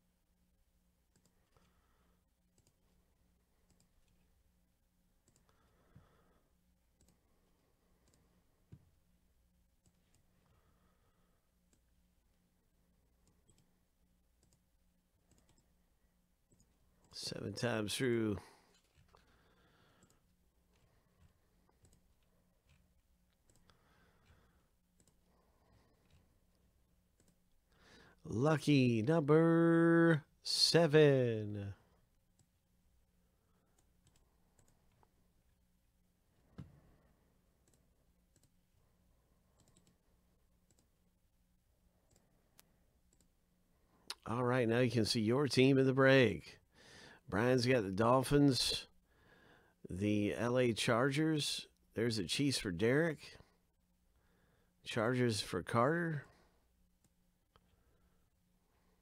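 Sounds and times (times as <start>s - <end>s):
faint steady hum: 0.0s - 59.0s
computer mouse clicks: 1.1s - 1.7s, 2.5s - 3.0s, 3.6s - 4.3s, 5.2s - 5.7s, 7.0s - 7.2s, 8.0s - 8.8s, 13.2s - 13.8s, 14.4s - 15.8s, 16.5s - 17.2s, 20.0s - 25.3s, 25.9s - 27.5s, 33.7s - 35.1s, 37.6s - 38.6s, 39.5s - 40.0s, 40.6s - 40.9s, 42.1s - 43.3s.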